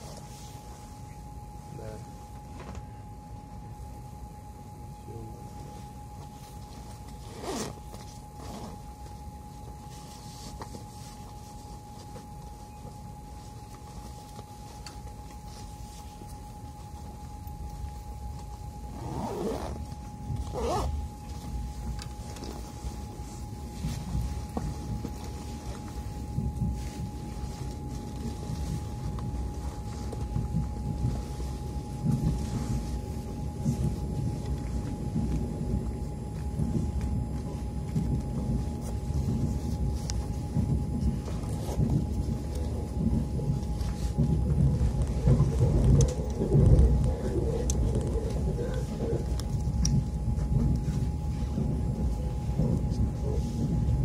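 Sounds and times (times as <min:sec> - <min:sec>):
thin steady hum: 0:00.0 - 0:54.0
train wheels rumbling on rails: 0:21.3 - 0:54.0.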